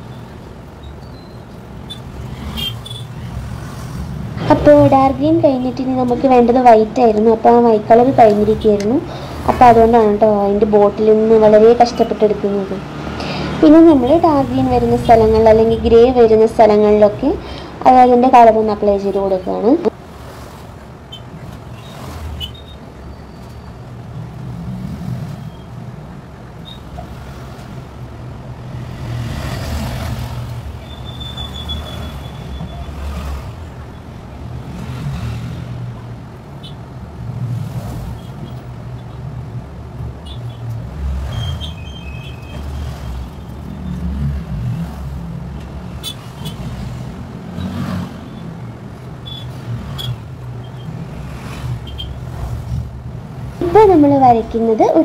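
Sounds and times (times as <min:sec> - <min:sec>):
low rumbling background noise: 0:03.0 - 0:42.0.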